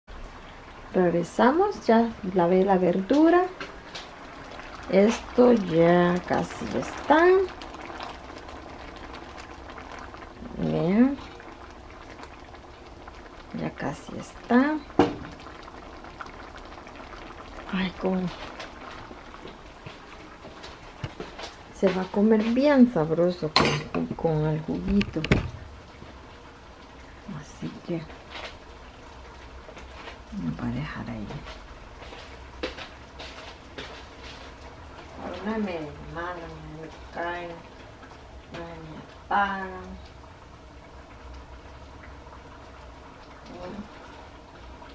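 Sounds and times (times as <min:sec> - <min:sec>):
sauce bubbling and popping in a pan: 0:00.1 - 0:44.9.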